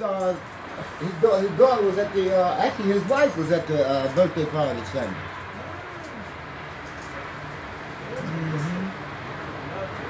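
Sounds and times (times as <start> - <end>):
man murmuring: 8.1 - 9.0.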